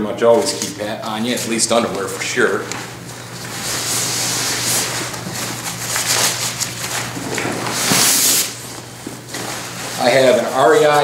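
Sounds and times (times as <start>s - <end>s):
nylon fabric rustling and scraping: 1.3s - 11.0s.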